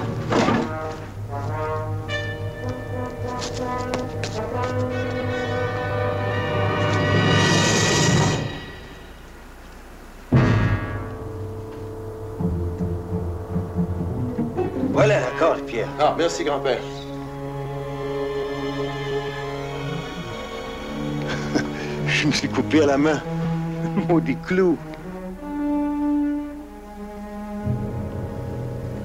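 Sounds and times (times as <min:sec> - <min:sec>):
dramatic orchestral music: 0:00.0 - 0:09.4, 0:10.3 - 0:29.0.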